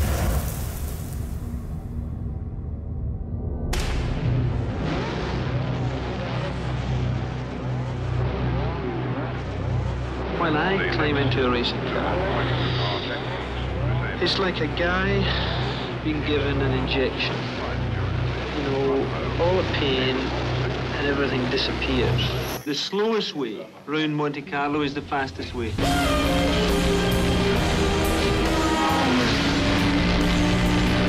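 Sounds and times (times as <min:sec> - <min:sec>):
deep steady rumble: 0:00.0 - 0:22.6
racing car engine running: 0:03.8 - 0:22.6, 0:24.8 - 0:31.0.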